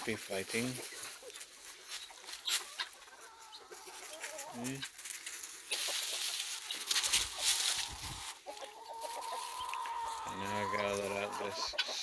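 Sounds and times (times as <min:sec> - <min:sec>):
dry leaves crunching underfoot: 0:00.0 - 0:11.5
chickens clucking: 0:00.0 - 0:12.0
fowl steady held call: 0:05.7 - 0:12.0.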